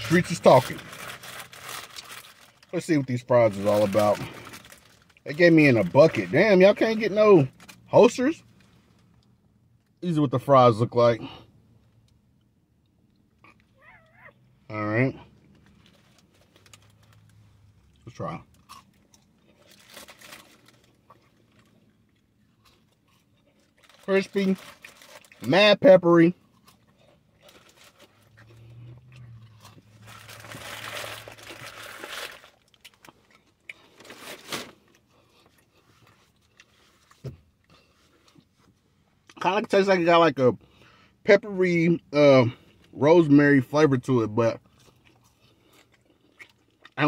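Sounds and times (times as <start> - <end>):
wet crunching of chewing: 15.5 - 25.5, 26.4 - 39.4, 44.6 - 47.0.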